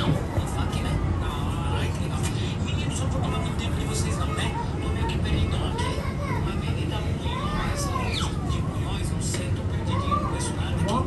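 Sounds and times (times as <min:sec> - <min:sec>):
bus engine rumble: 0:00.0 - 0:11.0.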